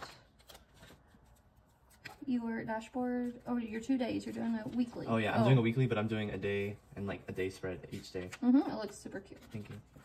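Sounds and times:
paper rustling and clicking: 0.0s - 2.4s.

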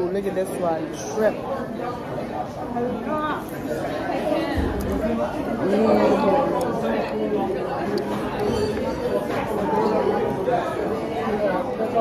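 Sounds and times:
people talking at once: 0.0s - 12.0s.

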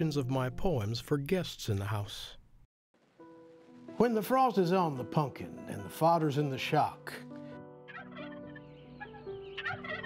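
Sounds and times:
soft background music: 0.0s - 2.4s, 3.0s - 10.0s
turkey gobbling: 7.9s - 10.0s.

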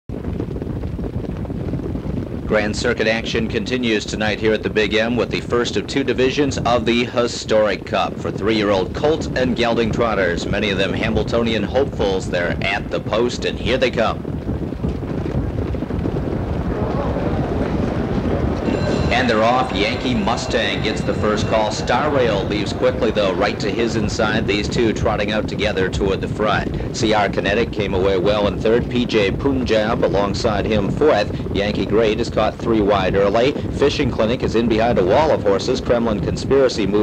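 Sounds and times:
wind-like noise: 0.1s - 37.0s
low rumbling background noise: 0.2s - 37.0s
low rumble: 14.2s - 29.4s
faint murmur of voices: 16.3s - 28.2s.

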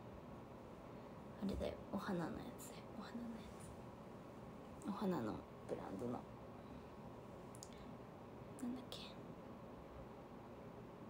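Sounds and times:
woman whispering softly: 2.0s - 3.7s, 8.6s - 9.3s.

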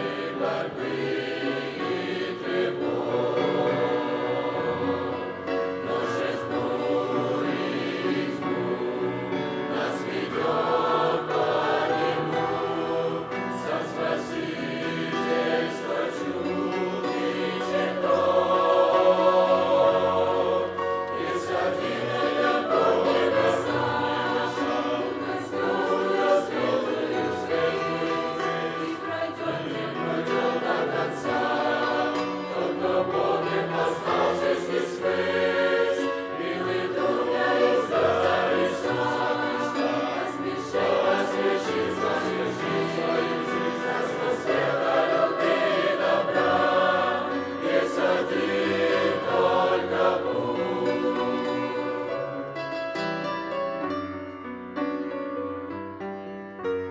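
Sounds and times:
mixed choir singing a hymn: 0.0s - 53.5s.

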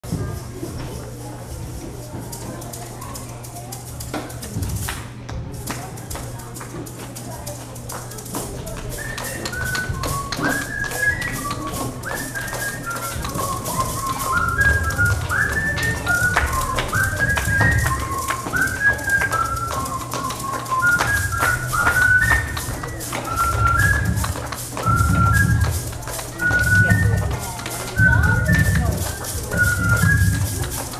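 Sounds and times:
maracas shaken in rhythm: 0.0s - 30.9s
man whistling a melody: 8.9s - 30.9s.

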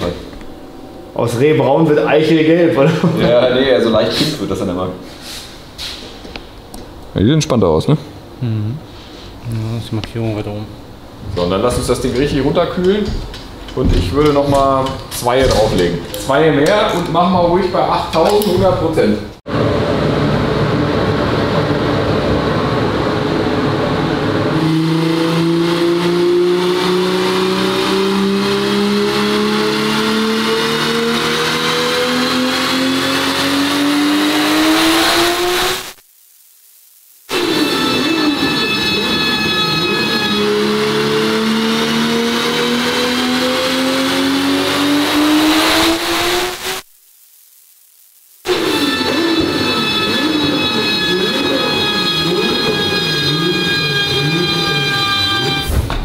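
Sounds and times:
turbocharged engine revving on dyno: 19.5s - 36.0s, 37.3s - 46.9s
wavering droning: 37.3s - 46.8s, 48.5s - 55.8s.

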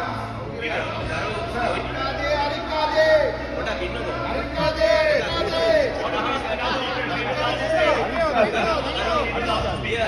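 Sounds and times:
babble of overlapping voices: 0.0s - 10.0s.

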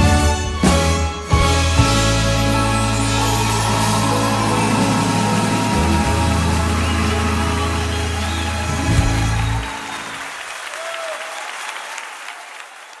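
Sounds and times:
applause: 2.7s - 13.0s.

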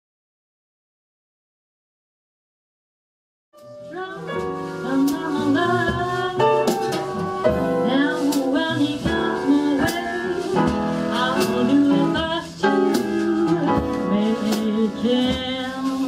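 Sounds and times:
flute: 3.6s - 11.7s
double bass: 3.6s - 16.0s
drums: 3.6s - 16.0s
piano: 3.6s - 16.0s
woman singing: 3.8s - 16.0s.

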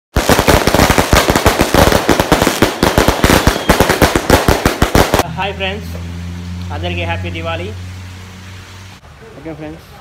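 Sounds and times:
fireworks bangs: 0.1s - 5.3s.

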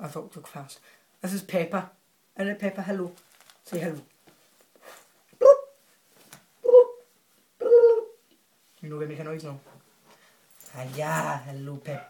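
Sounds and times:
small dog barking: 5.4s - 5.8s.

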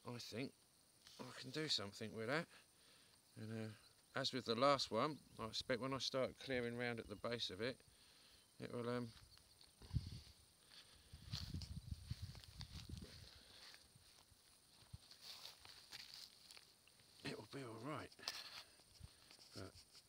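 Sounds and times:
footsteps in dry grass: 9.0s - 20.0s
rustling in dry grass: 9.1s - 20.0s.

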